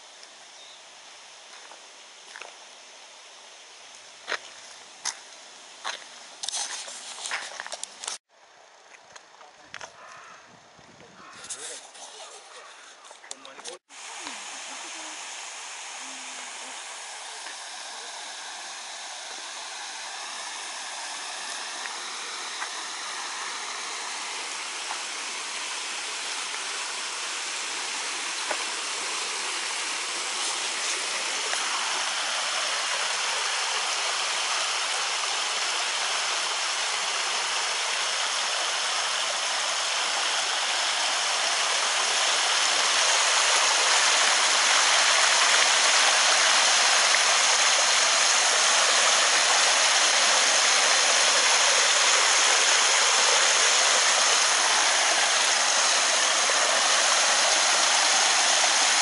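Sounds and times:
running water rushing: 11.2 - 59.0.

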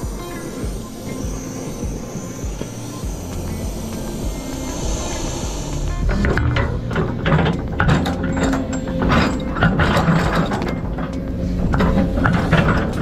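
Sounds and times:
diesel engine low rumble: 0.0 - 13.0
steel tracks clanking: 0.0 - 13.0.

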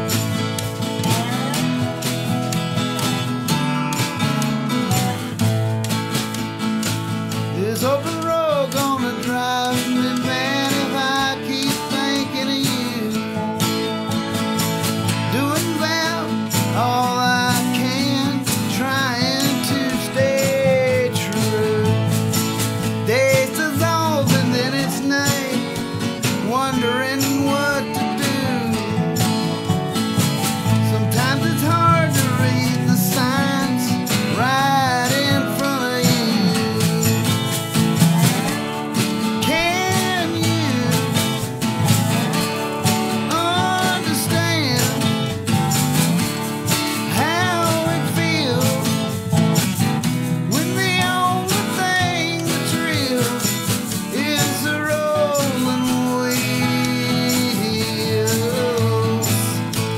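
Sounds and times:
slide resonator guitar: 0.0 - 59.9
strummed acoustic guitar: 0.0 - 59.9.

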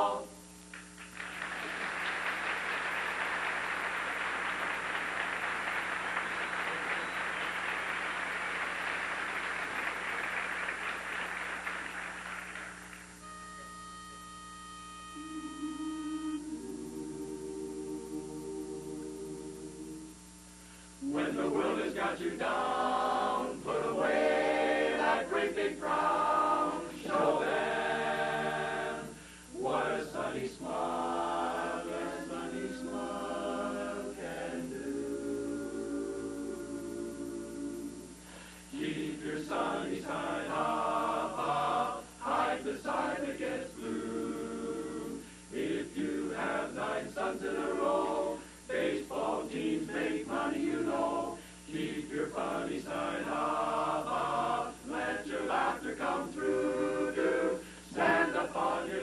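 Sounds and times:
audience applause: 1.0 - 13.2
men's chorus singing a cappella: 15.7 - 20.1, 21.0 - 38.1, 38.7 - 59.0.

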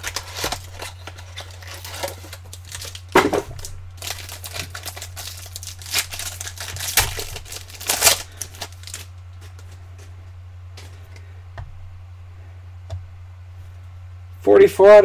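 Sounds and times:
foil wrappers crinkling and tearing: 0.0 - 9.9
low hum: 0.0 - 14.6.

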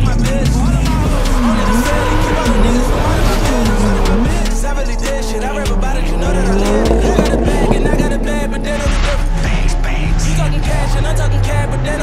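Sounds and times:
car engine revving: 0.0 - 12.0
hip-hop music: 0.0 - 12.0
tyre squeal: 0.9 - 8.5.

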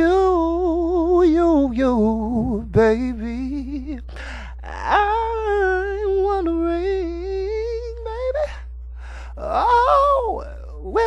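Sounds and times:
person singing wordless moan: 7.6 - 8.6, 9.2 - 11.0.

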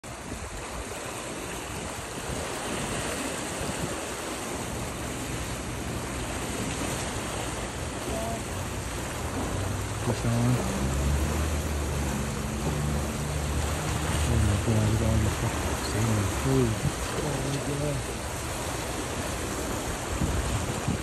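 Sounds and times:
rushing swirling water: 0.0 - 21.0.

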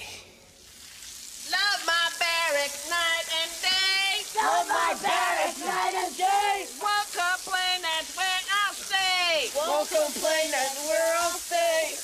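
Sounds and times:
garden hose spraying water: 0.0 - 12.0
person singing: 1.5 - 8.8.

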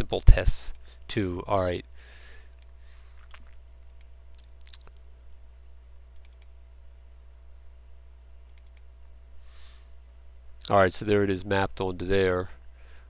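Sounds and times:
low electrical hum: 0.0 - 13.0
computer mouse clicking: 2.5 - 2.8, 3.8 - 5.0, 6.1 - 6.5, 8.5 - 8.9.

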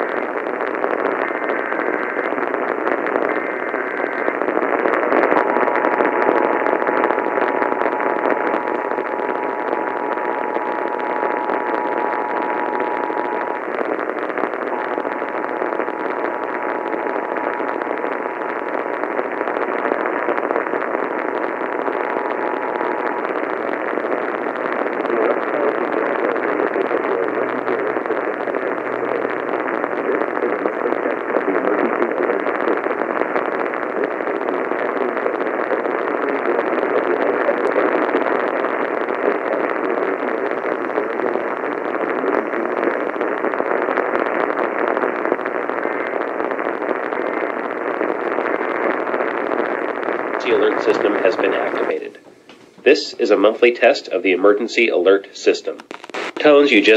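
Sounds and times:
radio static and hiss: 0.0 - 56.9.

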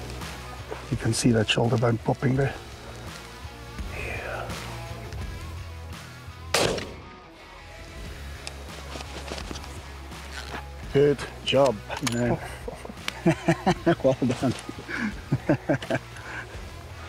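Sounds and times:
background music: 0.0 - 17.0
rifle shot: 6.5 - 7.2.

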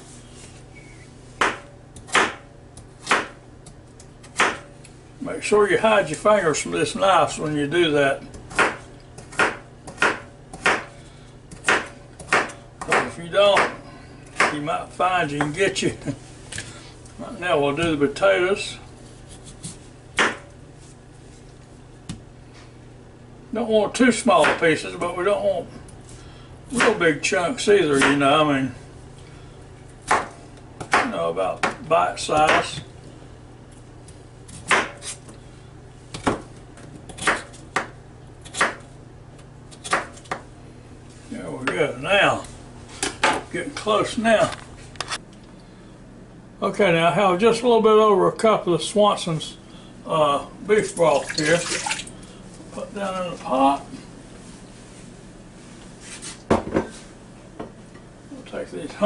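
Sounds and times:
knife chopping on plastic board: 1.4 - 3.4, 4.2 - 4.7, 8.5 - 10.9, 11.5 - 13.8, 14.4 - 14.6, 19.6 - 20.5, 30.0 - 31.8, 32.4 - 32.8, 34.5 - 35.2, 37.1 - 38.8, 39.7 - 40.4.

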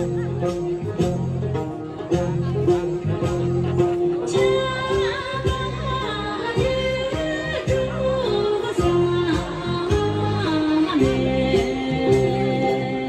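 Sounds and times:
person singing with ornamented pitch: 4.3 - 13.0.

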